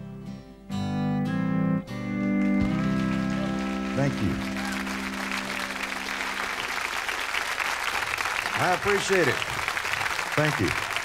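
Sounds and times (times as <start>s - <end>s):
country band playing chord: 0.7s - 7.2s
audience applause: 2.2s - 11.0s.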